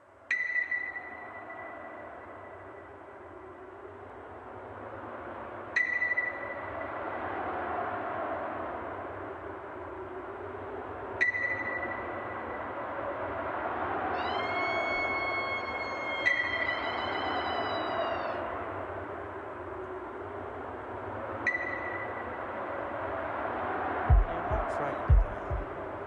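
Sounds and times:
low hazy wash: 0:00.0 - 0:26.0
electronic sonar pings: 0:00.3 - 0:02.7, 0:05.8 - 0:07.0, 0:11.2 - 0:12.6, 0:21.5 - 0:22.4.

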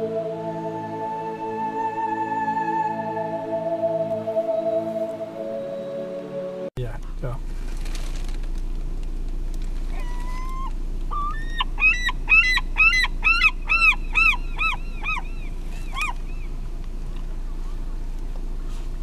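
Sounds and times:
steady low rumble: 0:06.8 - 0:19.0
bird calling: 0:09.9 - 0:19.0.

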